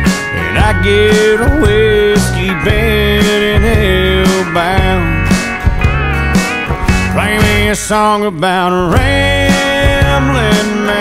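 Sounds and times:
country band playing: 0:00.0 - 0:11.0
sliding guitar notes: 0:00.0 - 0:11.0.

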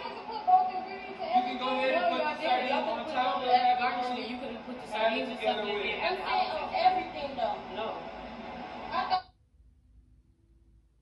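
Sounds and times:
voices from tv speakers: 0:00.0 - 0:09.2
faint steady hum: 0:00.0 - 0:11.0.

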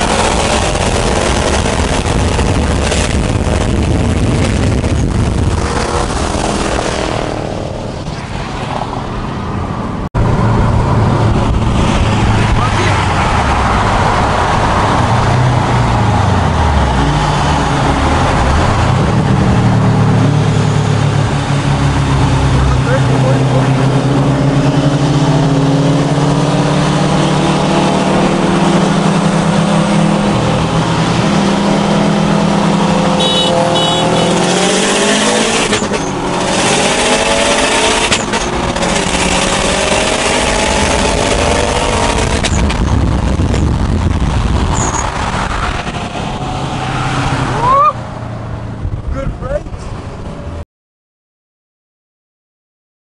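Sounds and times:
wind and road noise: 0:00.0 - 0:50.6
car engine accelerating: 0:10.2 - 0:50.4.

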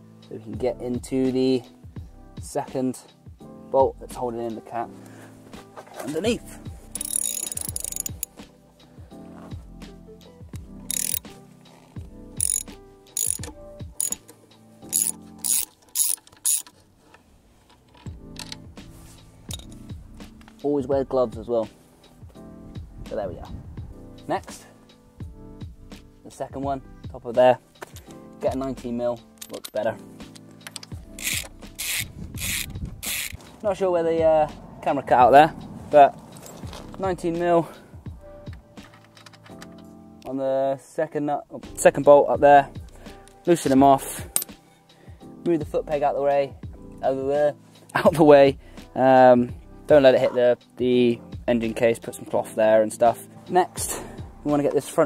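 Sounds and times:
socket ratchet clicking: 0:06.9 - 0:08.3, 0:10.6 - 0:11.3, 0:12.4 - 0:16.8, 0:18.0 - 0:18.6, 0:19.5 - 0:19.9, 0:30.3 - 0:33.4, 0:38.8 - 0:39.8.

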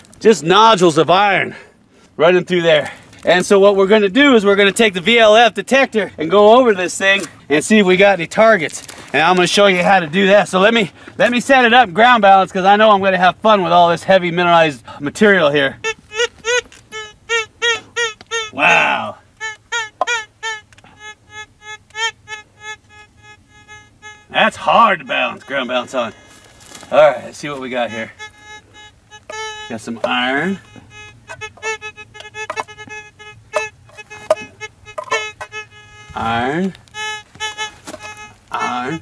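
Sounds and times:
metal detector short beeps: 0:19.4 - 0:39.0.

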